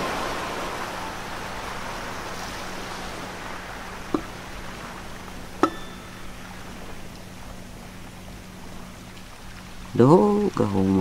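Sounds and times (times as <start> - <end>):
sea waves surf: 0.0 - 11.0.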